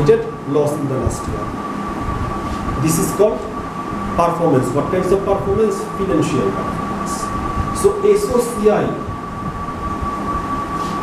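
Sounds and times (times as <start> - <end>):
thin whine: 0.0 - 11.0.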